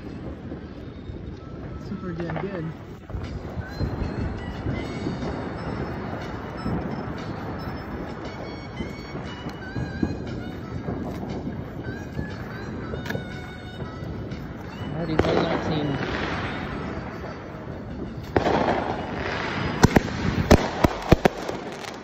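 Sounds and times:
fireworks popping and crackling: 0.0s - 22.0s
sharp firework bang: 15.0s - 17.4s, 18.2s - 22.0s.

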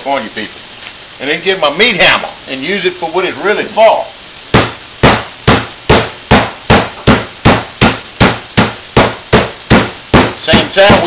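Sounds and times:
meat hammer pounding in plastic bag: 4.5s - 11.0s.

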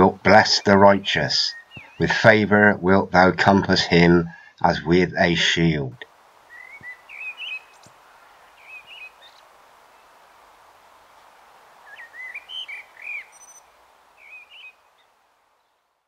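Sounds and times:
blackbird singing: 0.0s - 2.2s, 6.5s - 9.4s, 11.8s - 15.8s
faint steady hiss: 0.0s - 16.0s.

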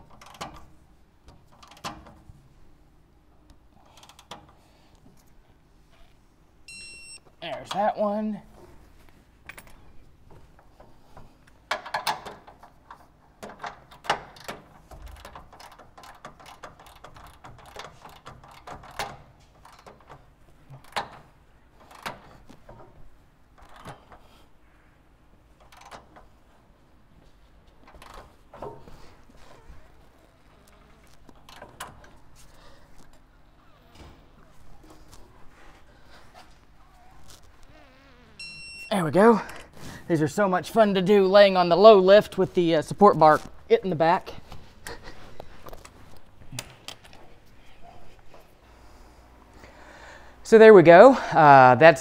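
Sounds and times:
torque wrench electronic beep: 6.7s - 7.2s, 38.4s - 39.0s.

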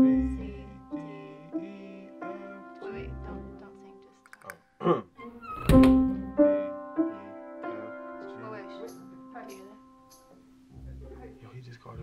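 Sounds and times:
short vocal sound: 4.4s - 5.2s.

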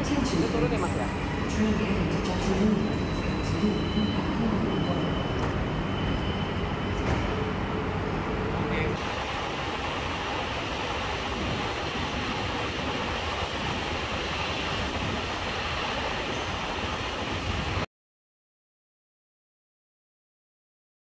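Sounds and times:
train electric hum: 0.0s - 17.9s
train rushing noise: 0.0s - 17.9s.

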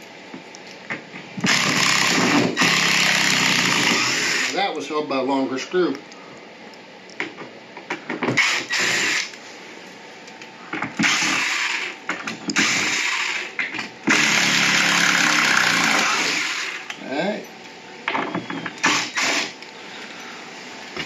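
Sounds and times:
cordless drill running: 1.4s - 4.6s, 8.3s - 9.4s, 11.0s - 16.9s, 18.8s - 19.6s
drill clicks: 1.4s - 4.6s, 8.3s - 9.4s, 11.0s - 13.5s.

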